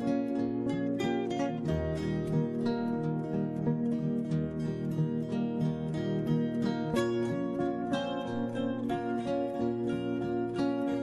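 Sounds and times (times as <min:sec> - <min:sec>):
plucked string music: 0:00.0 - 0:11.0.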